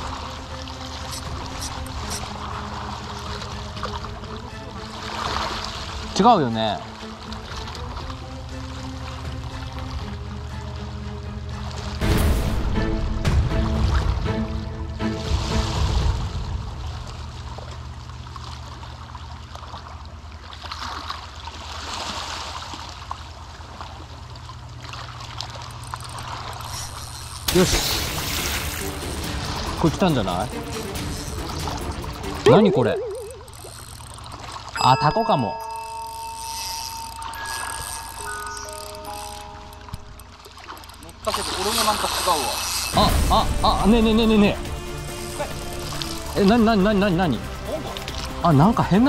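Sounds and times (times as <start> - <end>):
water washing and trickling: 0.0 - 34.8, 35.5 - 49.0
long held music notes: 34.8 - 40.4.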